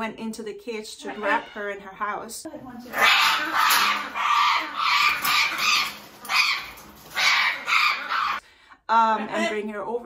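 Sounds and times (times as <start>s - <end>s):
parrot squawking harshly: 2.9s - 8.4s.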